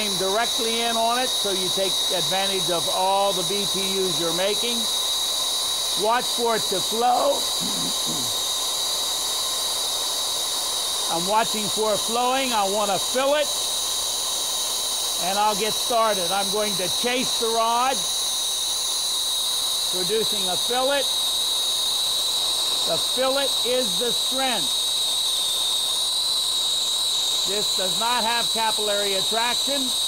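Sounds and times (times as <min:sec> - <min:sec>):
torch flame hissing: 0:00.0 - 0:30.0
faint high whistle: 0:16.5 - 0:30.0.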